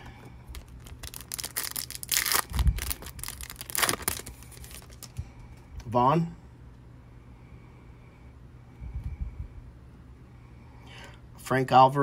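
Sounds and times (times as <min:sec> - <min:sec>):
foil wrapper tearing and crinkling: 0:00.5 - 0:05.2.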